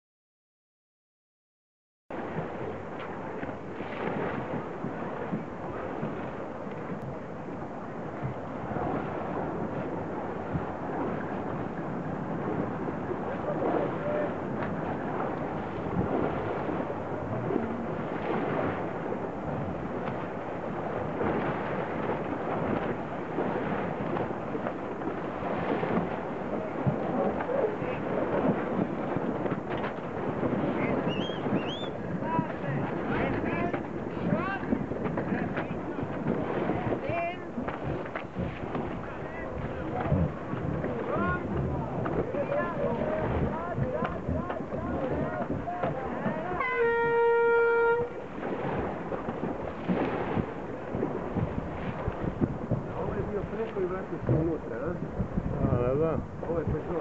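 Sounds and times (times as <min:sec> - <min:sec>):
wind buffeting microphone: 0:02.1 - 0:57.0.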